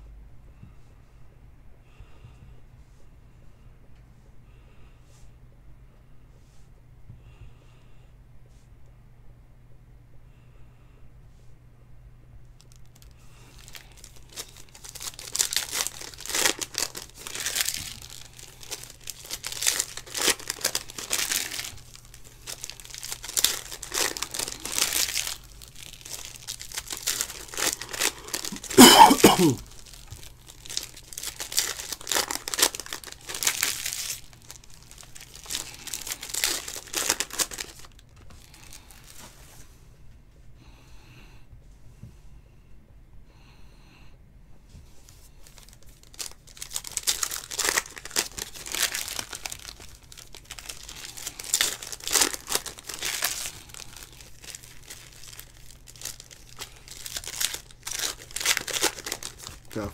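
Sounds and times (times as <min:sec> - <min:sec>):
foil wrappers tearing and crinkling: 0:12.6 - 0:39.3, 0:45.4 - 0:59.9.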